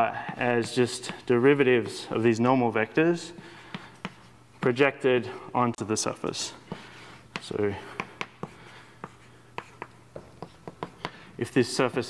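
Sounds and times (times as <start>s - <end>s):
chalk tapping on blackboard: 0.2s - 2.0s, 3.7s - 4.3s, 6.7s - 11.3s.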